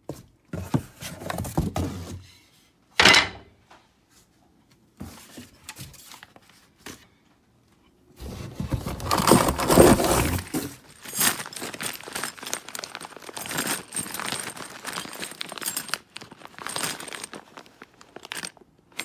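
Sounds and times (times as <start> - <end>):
cardboard rustling and tearing: 8.2 - 15.5
plastic bag crinkling: 8.9 - 19.0.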